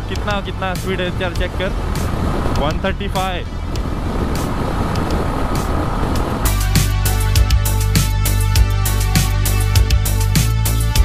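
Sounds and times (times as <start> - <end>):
motorcycle engine and road noise: 0.0 - 11.0
music with strong drum beat: 0.0 - 11.0.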